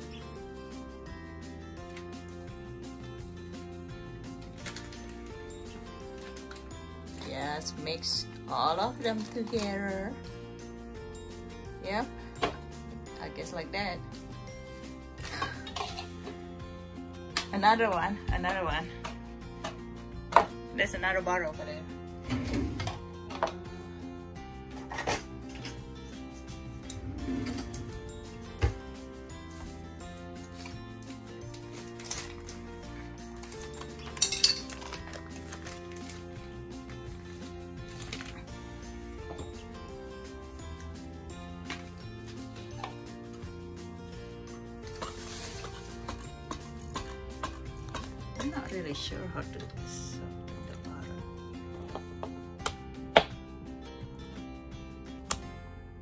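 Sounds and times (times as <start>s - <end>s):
background music: 0.0s - 56.0s.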